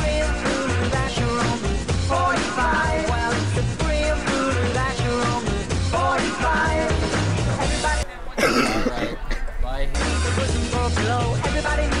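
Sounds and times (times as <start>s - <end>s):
person making cough-like sounds: 8.4s - 9.5s.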